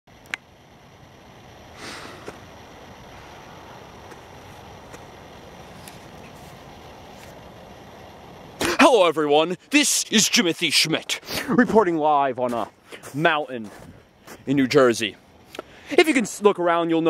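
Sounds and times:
low outdoor background rush: 0.1 - 17.0
sharp click: 0.2 - 0.5.

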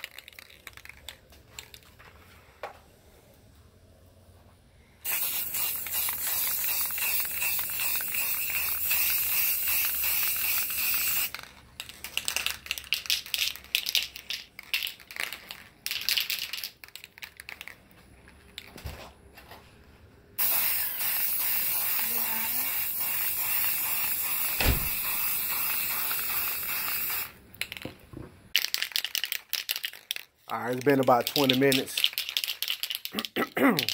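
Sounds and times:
spray paint can hissing: 5.0 - 11.5, 20.4 - 27.4, 31.2 - 33.9.

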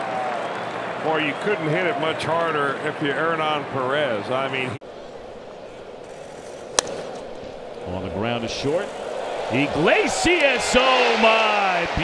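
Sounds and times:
bat cracking against baseball: 6.0 - 7.8.

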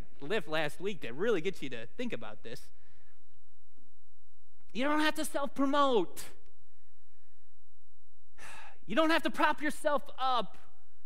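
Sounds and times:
man speaking: 0.0 - 2.8, 4.7 - 6.5, 8.5 - 10.8
man breathing: 2.7 - 3.4, 8.4 - 8.8.

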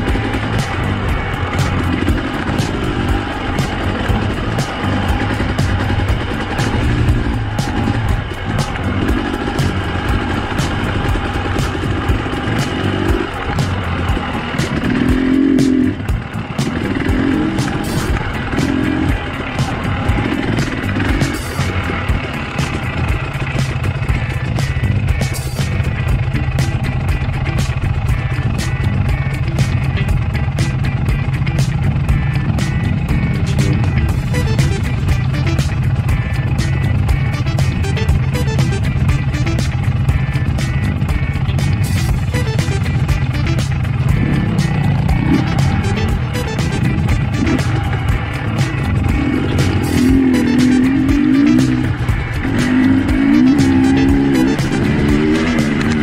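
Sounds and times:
clicks and rattles from bumpy ride: 0.0 - 56.0
dirt bike engine revving: 0.0 - 56.0.

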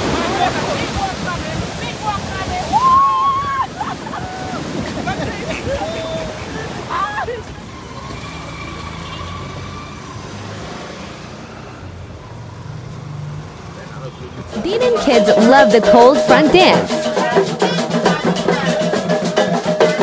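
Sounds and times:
surf washing up on beach: 0.0 - 11.8
people calling out: 0.1 - 7.8, 14.5 - 20.0
vehicle engine humming: 5.5 - 17.2.

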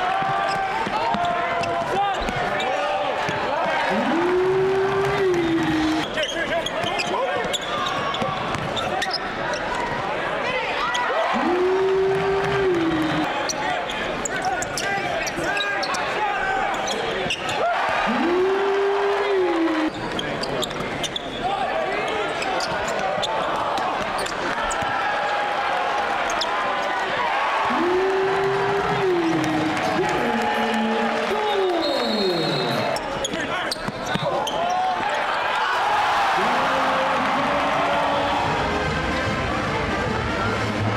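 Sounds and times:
arena crowd chatter: 0.0 - 40.9.

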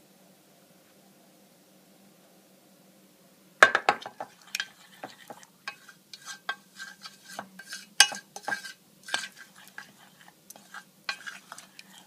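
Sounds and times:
spoon knocking on metal bowl: 3.6 - 4.4
spoon stirring thick mixture: 3.8 - 12.0.

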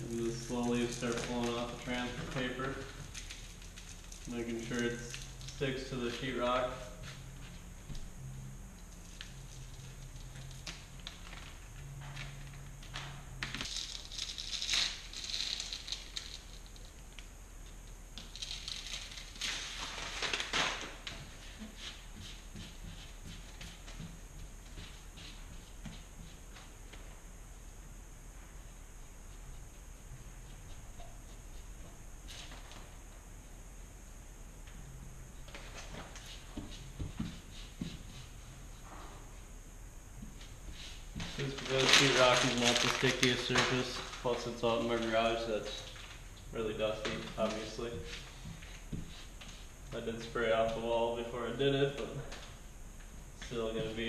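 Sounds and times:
paper rustling and crinkling: 0.0 - 7.6, 18.2 - 24.1, 40.4 - 49.7
faint steady hum: 0.0 - 54.0.

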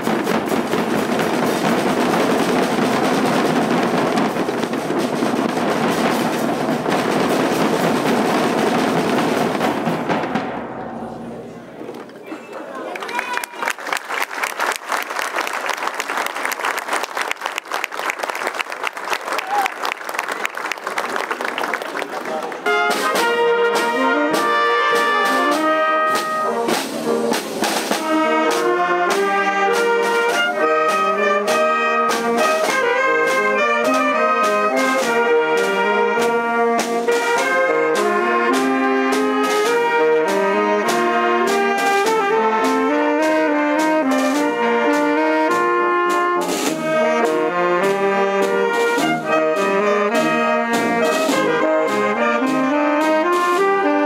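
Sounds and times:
wind band playing: 0.0 - 11.9, 13.0 - 54.0
side drums rattling and rolling: 0.0 - 12.2, 13.5 - 54.0.

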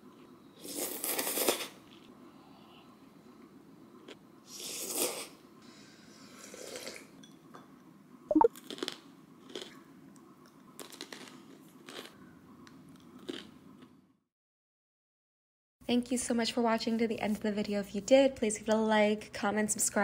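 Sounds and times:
pretzels crunching and chewing: 8.5 - 9.8, 10.7 - 12.2, 12.9 - 13.9.

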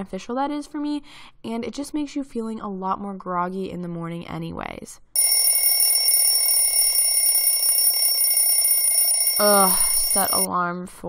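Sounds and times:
smartphone alarm ringing: 5.2 - 10.5.

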